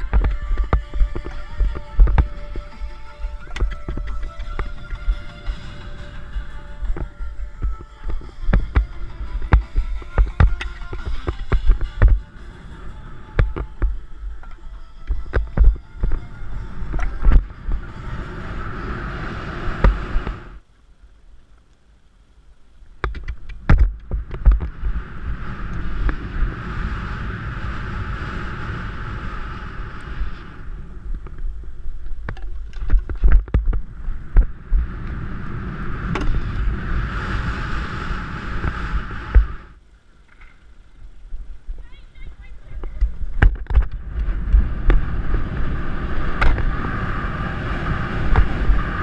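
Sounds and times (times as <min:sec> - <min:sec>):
hoofbeat thuds: 0:00.0 - 0:12.3
wind rushing over microphone: 0:00.0 - 0:20.6, 0:23.0 - 0:39.8, 0:41.2 - 0:49.0
low rumble: 0:00.0 - 0:20.7, 0:23.4 - 0:49.0
field ambience: 0:00.0 - 0:49.0.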